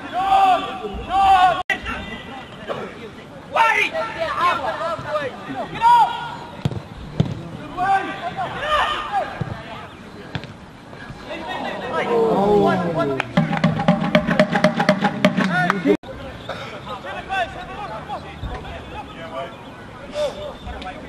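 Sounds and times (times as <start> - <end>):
voices shouting and calling: 0.0 - 14.2, 14.8 - 21.0.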